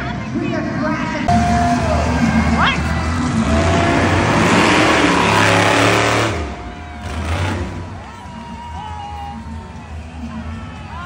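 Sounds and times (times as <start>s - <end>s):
public address sound: 0.0s - 3.0s
arena music: 0.0s - 11.0s
monster truck engine running: 0.0s - 11.0s.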